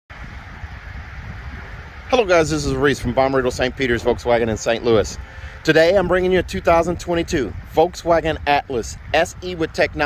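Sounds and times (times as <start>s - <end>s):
wind buffeting microphone: 0.1s - 10.0s
faint outdoor hiss: 0.2s - 10.0s.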